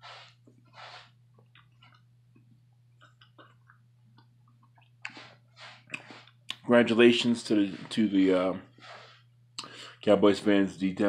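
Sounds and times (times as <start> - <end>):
breath puffs: 0.0 - 1.1, 5.1 - 6.4, 8.7 - 10.0
steady low hum: 0.0 - 11.0.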